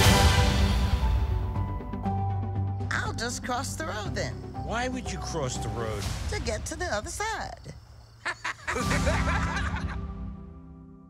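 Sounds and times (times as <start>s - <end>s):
characters laughing: 8.2s - 10.1s.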